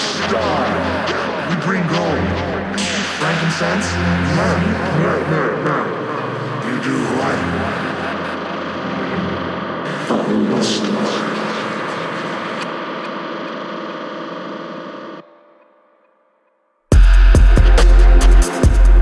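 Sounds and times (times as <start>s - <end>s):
sustained electronic pad: 0.0s - 19.0s.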